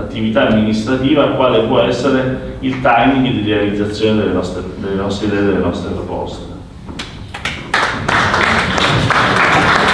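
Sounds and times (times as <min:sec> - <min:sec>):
audience applause: 0:07.7 - 0:09.9.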